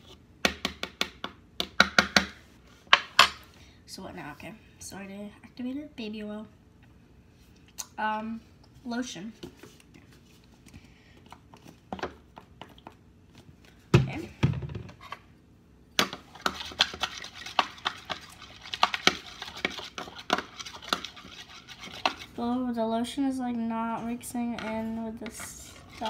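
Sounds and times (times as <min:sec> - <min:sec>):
spoon clinking and scraping bowl: 0:16.4 - 0:22.3.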